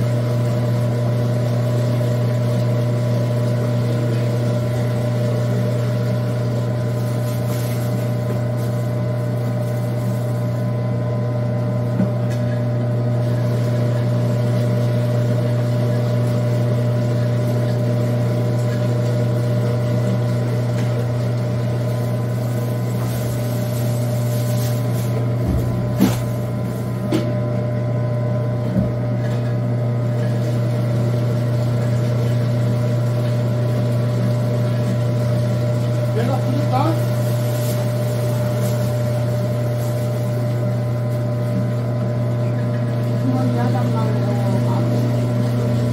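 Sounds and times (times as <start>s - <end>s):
food grinder motor humming: 0.0s - 45.9s.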